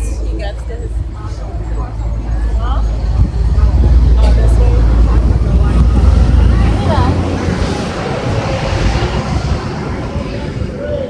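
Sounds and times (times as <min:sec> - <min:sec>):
background voices: 0:00.0 - 0:11.0
vehicle rumbling in traffic: 0:00.0 - 0:11.0.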